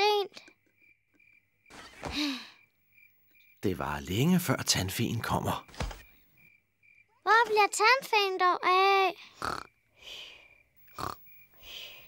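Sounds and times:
cartoon piglet snoring: 9.3 - 9.7, 10.9 - 11.2.

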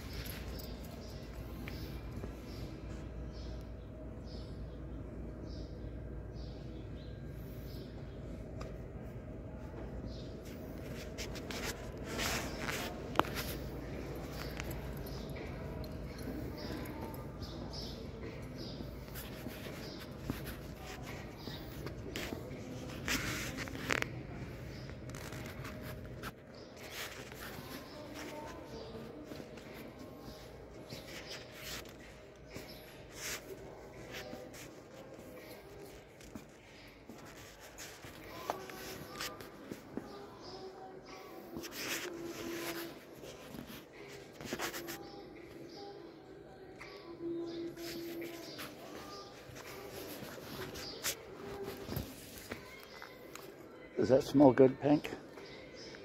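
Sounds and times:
faint background music: 0.0 - 56.0
store interior hum: 0.0 - 56.0
rustling scrape: 10.4 - 14.6, 19.1 - 36.0.

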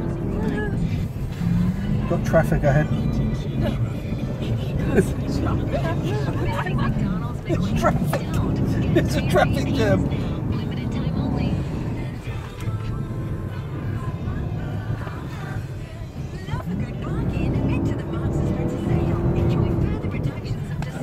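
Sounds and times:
engine and tyre rumble: 0.0 - 21.0
faint voices: 0.0 - 21.0
music: 0.0 - 21.0.

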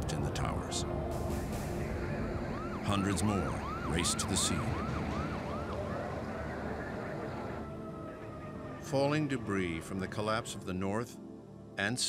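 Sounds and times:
fire truck siren yelping: 1.0 - 9.8.

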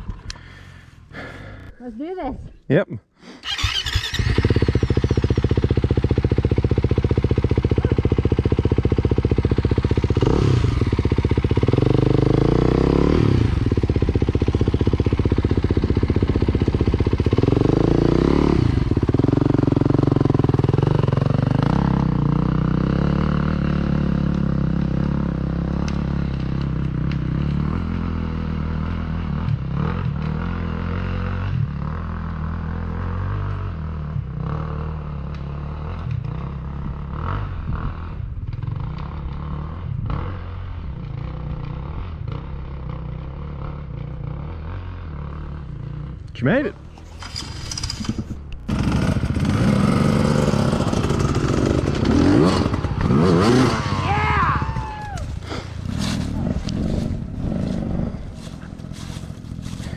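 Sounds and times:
dirt bike engines idling: 0.0 - 2.4, 3.4 - 29.3, 38.2 - 59.9.

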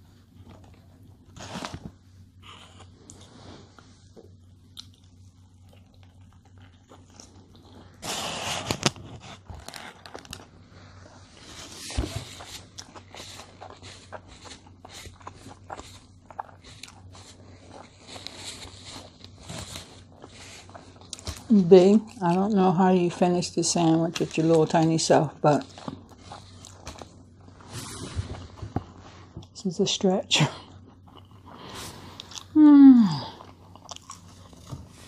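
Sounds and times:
person chewing with wet mouth clicks: 4.7 - 7.6.

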